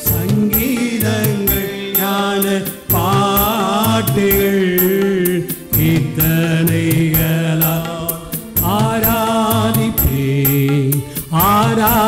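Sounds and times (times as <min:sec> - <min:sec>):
person singing devotional chant: 0:00.0 - 0:12.0.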